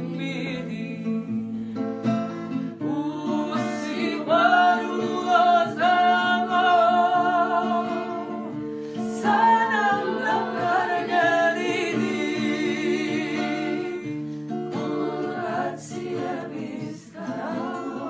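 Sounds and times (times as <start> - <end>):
women singing together: 0.0 - 1.5, 2.6 - 18.0
acoustic guitar fingerpicked and strummed: 0.0 - 18.0.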